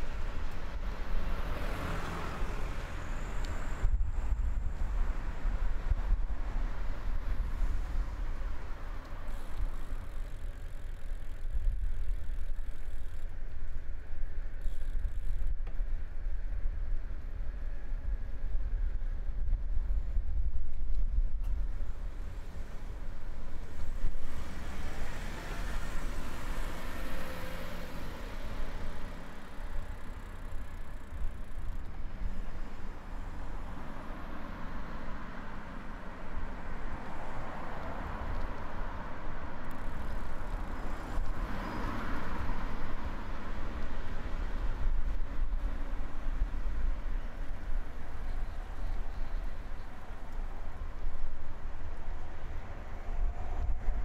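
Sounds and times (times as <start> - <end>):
cars passing: 0.0 - 15.2, 21.6 - 54.0
wind and road noise: 0.0 - 54.0.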